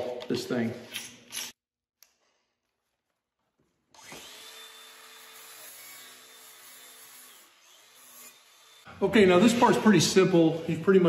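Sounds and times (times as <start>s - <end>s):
angle grinder grinding steel: 4.0s - 8.9s.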